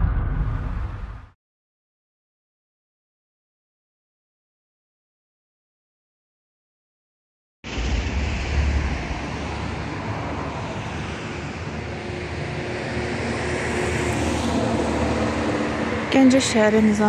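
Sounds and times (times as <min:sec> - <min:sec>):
rumble and hiss: 0:07.7 - 0:12.2
distant traffic hum: 0:07.7 - 0:17.0.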